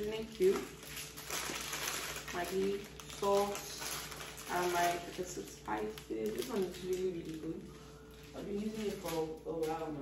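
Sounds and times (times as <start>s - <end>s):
plastic packets crinkling: 0.0s - 10.0s.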